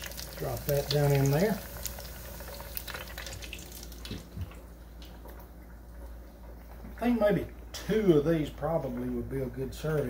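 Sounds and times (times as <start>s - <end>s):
oil bubbling in deep fryer: 0.0s - 9.9s.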